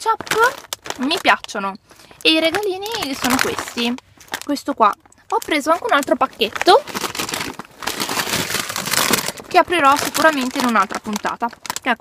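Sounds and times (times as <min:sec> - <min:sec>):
plastic bag crinkling: 0:00.0 - 0:12.0.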